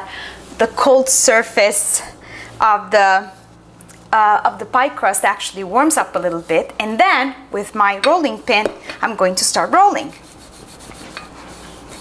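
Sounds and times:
rolling pin rolling over dough: 0:05.1 - 0:07.0, 0:09.2 - 0:12.0.

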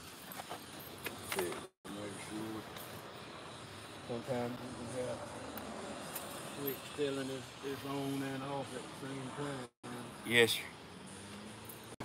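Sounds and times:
man talking: 0:01.4 - 0:02.7, 0:04.0 - 0:05.2, 0:06.6 - 0:10.7.

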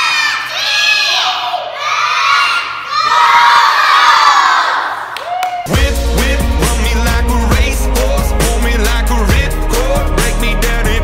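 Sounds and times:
children shouting and cheering: 0:00.0 - 0:05.8
music with heavy bass beat: 0:05.7 - 0:11.0.

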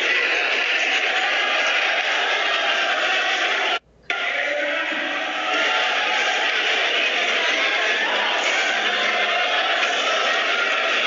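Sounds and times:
arena crowd din: 0:00.0 - 0:11.0.

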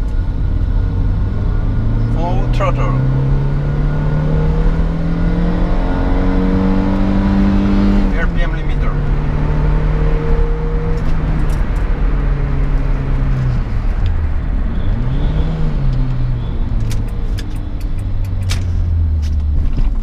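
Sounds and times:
car engine from inside cabin: 0:00.0 - 0:20.0
sharp clicks: 0:16.8 - 0:19.5.

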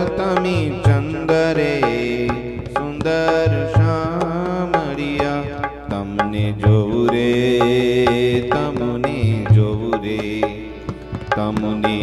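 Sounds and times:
tabla strokes: 0:00.0 - 0:12.0.

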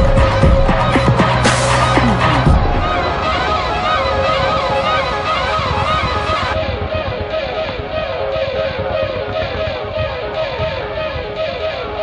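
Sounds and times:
sirens yelping: 0:00.0 - 0:12.0.

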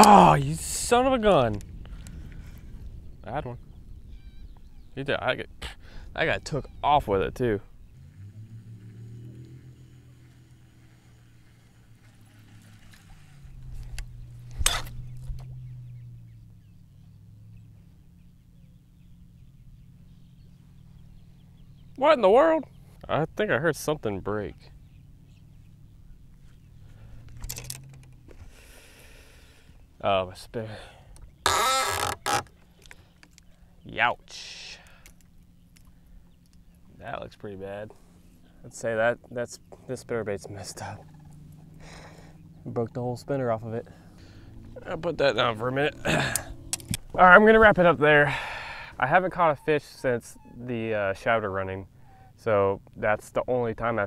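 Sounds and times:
person crying out in pain: 0:00.0 - 0:00.4, 0:46.0 - 0:46.7
electric trolling motor humming: 0:07.7 - 0:22.0, 0:31.2 - 0:33.5, 0:39.6 - 0:50.0
sharp crack of lure hitting camera: 0:13.9 - 0:15.5, 0:46.3 - 0:47.1
faint small clicks: 0:32.0 - 0:33.6, 0:34.8 - 0:36.6, 0:46.3 - 0:47.1
man laughing: 0:45.7 - 0:46.6.

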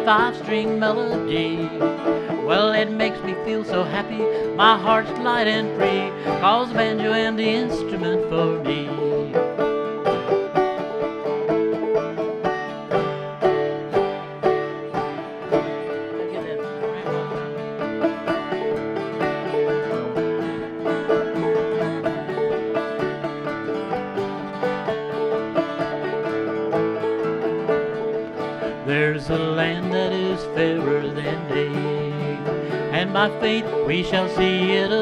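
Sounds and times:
acoustic guitar backing: 0:00.0 - 0:35.0
banjo plucking fast notes: 0:00.0 - 0:35.0.

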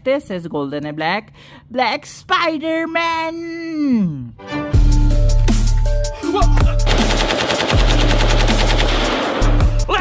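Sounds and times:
automatic rifle fire: 0:06.9 - 0:09.6.

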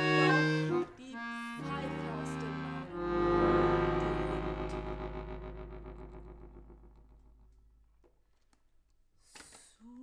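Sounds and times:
accordion chord held: 0:00.0 - 0:07.2.

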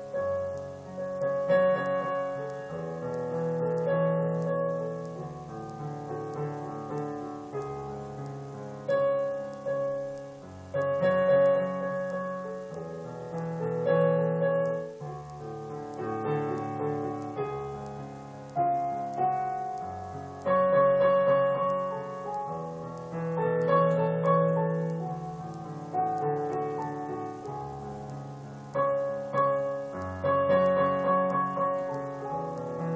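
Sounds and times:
solo piano piece: 0:00.0 - 0:32.9.

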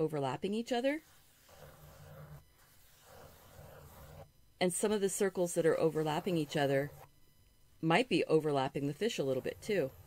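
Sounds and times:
pencil scratching on paper: 0:00.9 - 0:04.3, 0:05.6 - 0:07.1, 0:09.0 - 0:10.0.

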